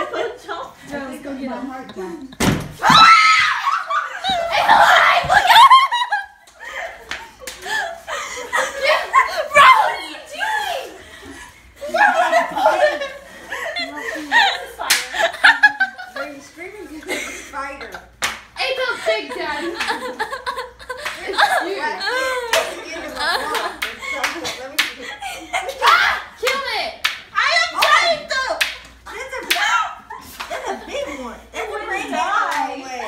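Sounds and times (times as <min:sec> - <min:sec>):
women laughing: 0:01.5 - 0:18.0, 0:18.8 - 0:26.0
women screaming: 0:02.8 - 0:05.8
girls' excited voices: 0:02.8 - 0:06.1, 0:08.5 - 0:11.2, 0:21.2 - 0:33.0.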